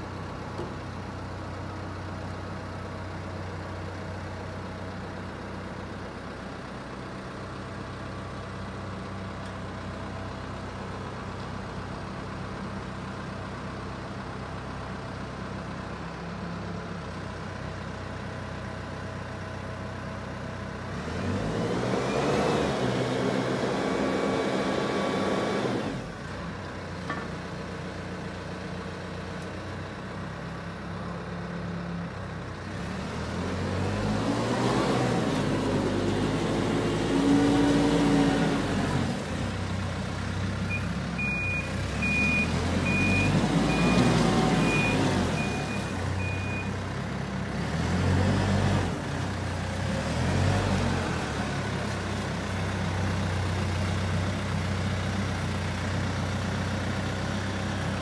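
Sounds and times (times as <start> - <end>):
diesel engine revving: 20.8 - 26.2, 32.6 - 55.3
reversing alarm beeping: 40.7 - 46.8.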